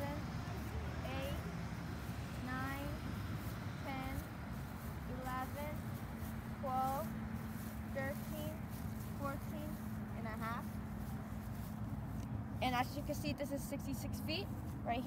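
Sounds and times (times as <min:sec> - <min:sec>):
woman counting aloud: 0:00.0 - 0:01.6, 0:02.3 - 0:03.1, 0:03.8 - 0:04.3, 0:05.0 - 0:05.8, 0:06.5 - 0:07.2, 0:07.9 - 0:10.7, 0:12.6 - 0:15.0
low rumble of road traffic: 0:00.0 - 0:15.0.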